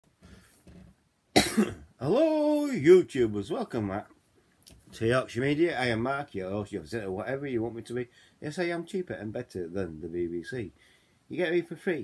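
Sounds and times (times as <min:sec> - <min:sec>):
man coughing: 0:01.4 - 0:01.9.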